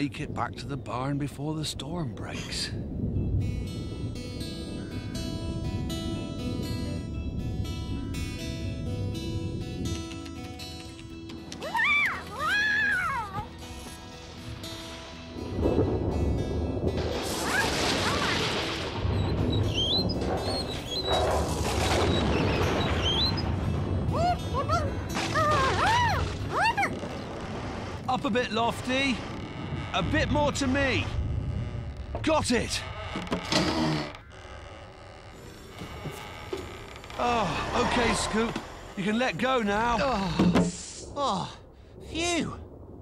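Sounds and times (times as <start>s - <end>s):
thunder rumble and crash: 0.0s - 10.0s, 14.2s - 34.3s, 37.4s - 43.0s
background music: 3.2s - 21.6s, 23.2s - 26.9s.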